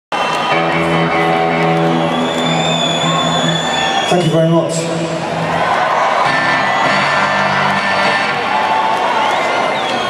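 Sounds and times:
live rock band over pa: 0:00.2 - 0:10.0.

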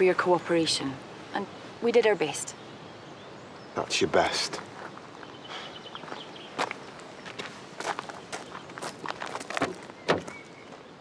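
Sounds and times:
footsteps on gravel: 0:04.6 - 0:10.8.

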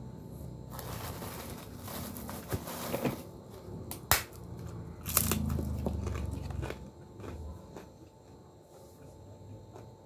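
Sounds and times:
cracker snapping and crunching: 0:00.7 - 0:08.4.

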